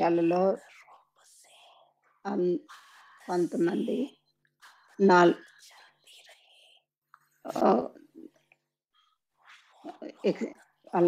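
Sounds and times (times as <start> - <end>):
woman speaking into a microphone: 0.0 - 0.7, 2.3 - 4.1, 4.9 - 5.4, 7.5 - 8.0, 9.9 - 11.0.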